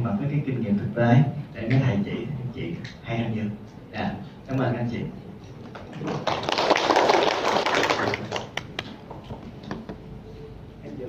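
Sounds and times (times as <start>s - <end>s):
audience applauding: 5.7s - 9.0s.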